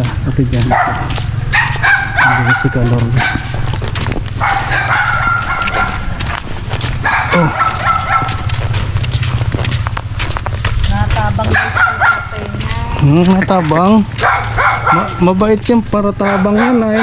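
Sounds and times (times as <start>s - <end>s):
steady low rumble: 0.0s - 16.2s
animal crying: 4.4s - 6.2s, 6.8s - 8.6s.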